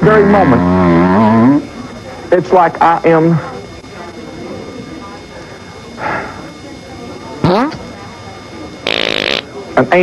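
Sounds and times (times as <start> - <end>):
comedic fart sounds: 0.1 - 1.6, 7.4 - 7.8, 8.8 - 9.5.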